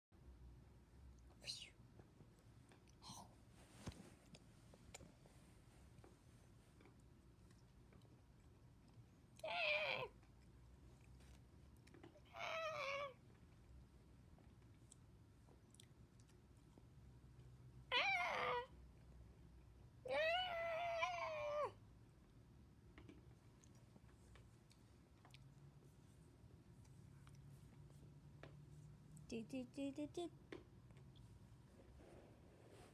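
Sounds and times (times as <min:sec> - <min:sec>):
faint short whisper: 0:01.3 - 0:01.9
cat meowing: 0:12.3 - 0:13.2.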